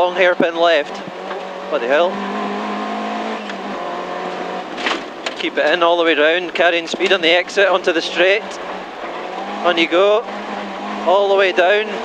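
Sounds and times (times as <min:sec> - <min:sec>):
road noise: 0:00.0 - 0:12.0
car engine running: 0:00.2 - 0:12.0.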